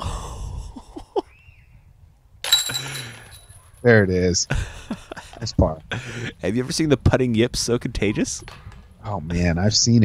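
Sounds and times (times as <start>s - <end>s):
disc striking metal chains: 2.4s - 3.8s.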